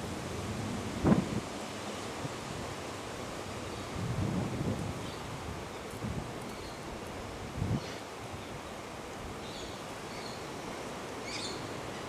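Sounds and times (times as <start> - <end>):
wind rumbling on microphone: 0.0 - 9.7.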